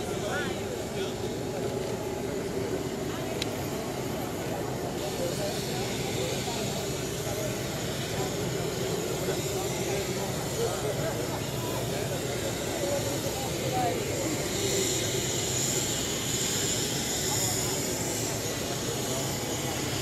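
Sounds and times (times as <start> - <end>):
people chattering: 0.0 - 20.0.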